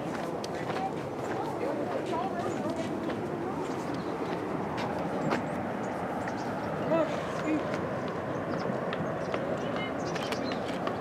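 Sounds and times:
faint indistinct voices: 0.0s - 7.8s, 9.0s - 10.9s
rushing outdoor background noise: 0.0s - 11.0s.

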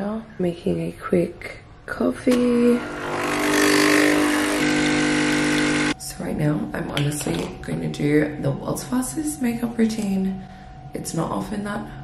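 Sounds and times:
espresso machine humming and hissing: 2.6s - 6.0s.

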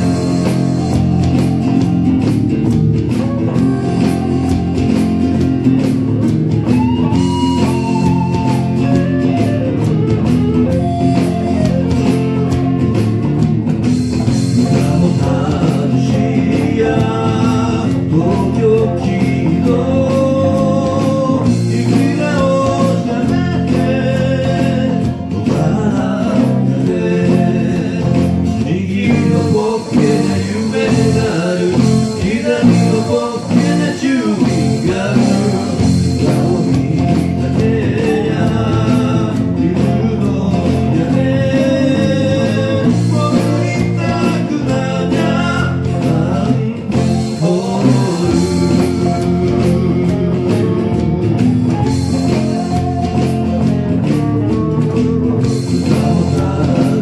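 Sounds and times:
man singing: 0.0s - 13.6s, 14.2s - 57.0s
acoustic guitar: 0.0s - 57.0s
electric bass: 0.0s - 57.0s
electric guitar: 0.0s - 57.0s
keyboard: 0.0s - 57.0s.

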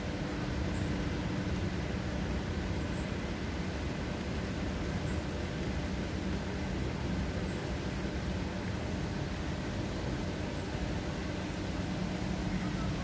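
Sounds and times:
outdoor low rumble: 0.0s - 13.0s.

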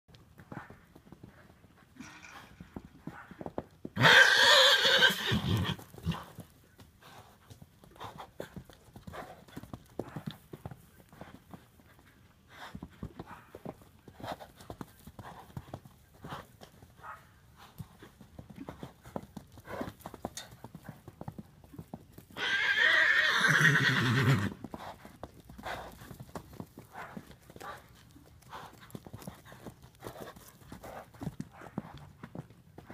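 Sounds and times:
hoofbeats on sand: 0.1s - 4.2s, 5.4s - 22.4s, 23.6s - 32.9s
horse neighing: 4.0s - 6.2s, 22.4s - 24.6s.

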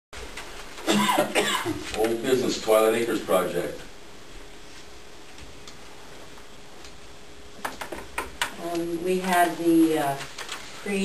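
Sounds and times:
faint room murmur: 0.2s - 11.0s.

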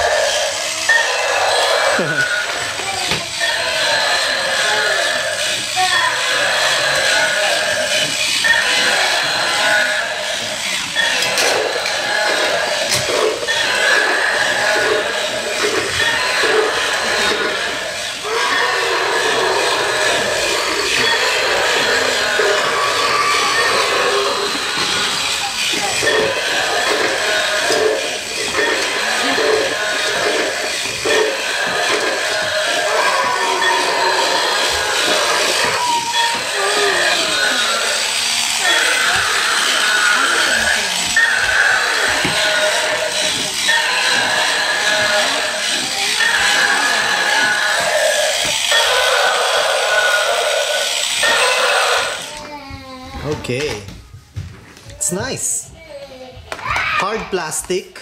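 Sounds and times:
toy dinosaur roars from small speaker: 0.0s - 52.4s.

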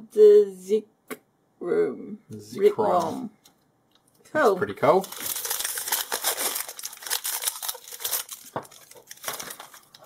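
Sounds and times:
foil wrapper crinkling: 4.8s - 10.0s.

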